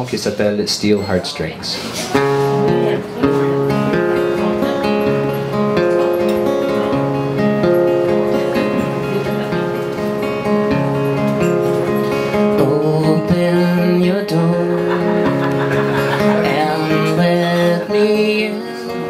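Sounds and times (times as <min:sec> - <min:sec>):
acoustic guitar strumming: 0:01.8 - 0:19.0.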